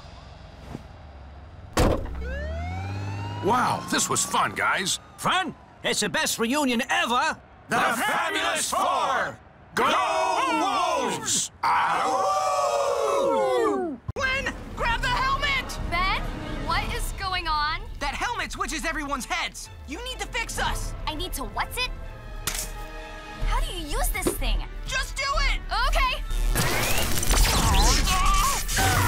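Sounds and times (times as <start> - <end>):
faint low rumble: 0.0 - 2.4
short sharp bang: 1.7 - 2.2
men cheering howl: 7.7 - 14.0.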